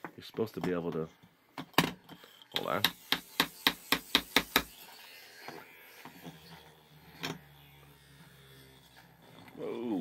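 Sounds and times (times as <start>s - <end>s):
spinning top humming: 2.3s - 10.0s
spinning top revved against board: 2.6s - 10.0s.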